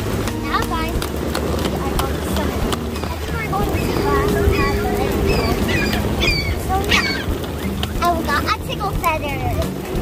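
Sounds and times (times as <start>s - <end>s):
steady outdoor noise: 0.0s - 10.0s
suitcase wheels rolling on wooden boards: 0.0s - 10.0s
wheels clicking at joints: 0.0s - 10.0s
background voices: 0.4s - 9.4s.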